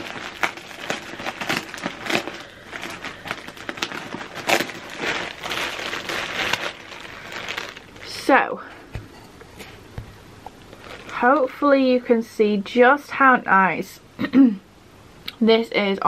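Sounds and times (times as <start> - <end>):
plastic bag crinkling: 0.0 - 8.6, 10.5 - 11.7.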